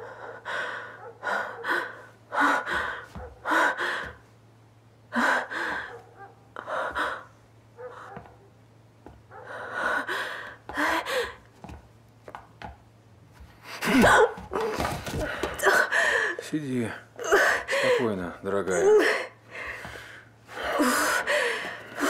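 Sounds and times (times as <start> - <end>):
woman gasping and breathing hard: 0.0 - 4.2, 5.1 - 6.0, 6.6 - 7.3, 9.4 - 11.4, 15.0 - 16.4, 17.2 - 18.1, 18.8 - 22.0
low steady hum: 0.0 - 22.0.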